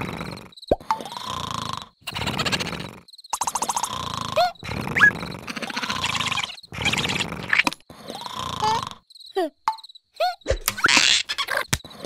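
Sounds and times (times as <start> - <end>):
high squeaky chirps: 3.2 - 7.8, 9.1 - 11.8.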